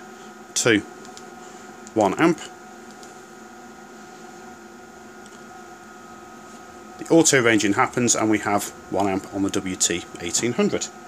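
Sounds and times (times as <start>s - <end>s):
cooling fans: 0.0s - 11.0s
electronic instruments humming: 0.0s - 11.0s.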